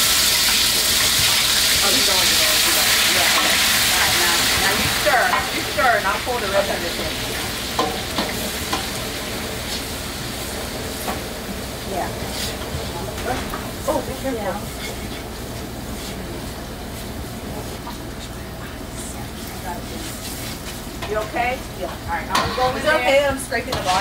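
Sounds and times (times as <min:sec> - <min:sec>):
hot oil sizzling in a pot: 0:00.0 - 0:24.0.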